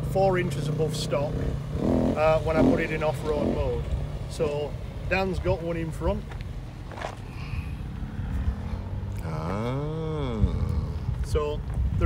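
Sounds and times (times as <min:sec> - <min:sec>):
vehicle engine revving: 0:00.0 - 0:05.7, 0:06.5 - 0:11.4
steady low rumble: 0:00.0 - 0:12.0.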